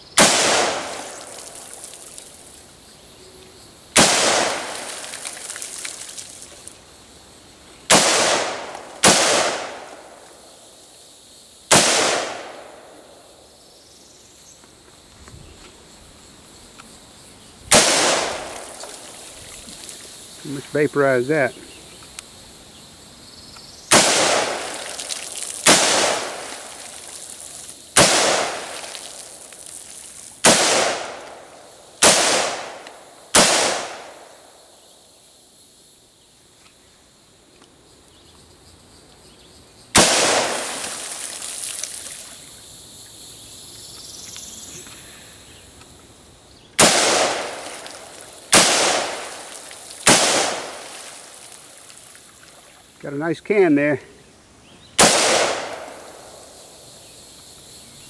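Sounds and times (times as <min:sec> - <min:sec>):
rifle shots with ringing echo: 0:00.2 - 0:01.6, 0:04.0 - 0:05.1, 0:07.9 - 0:10.7, 0:11.7 - 0:13.2, 0:17.7 - 0:19.2, 0:23.9 - 0:26.8, 0:28.0 - 0:29.1, 0:30.4 - 0:34.8, 0:40.0 - 0:40.9, 0:46.8 - 0:51.0, 0:55.0 - 0:56.8.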